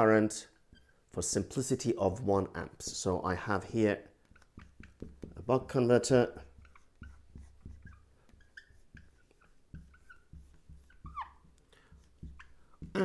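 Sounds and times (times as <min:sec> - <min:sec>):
marker squeaking on whiteboard: 0:00.4 - 0:13.0.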